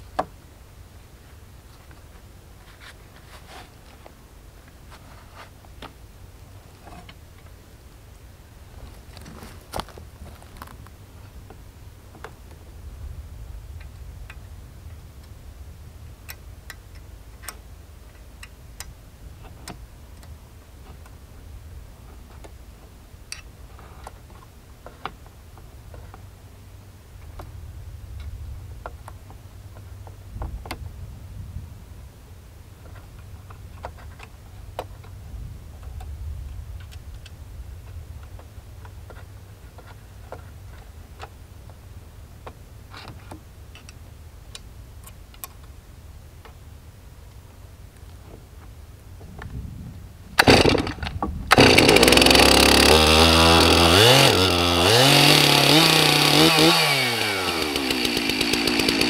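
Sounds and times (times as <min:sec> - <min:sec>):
low steady background noise: 0:00.0 - 0:59.0.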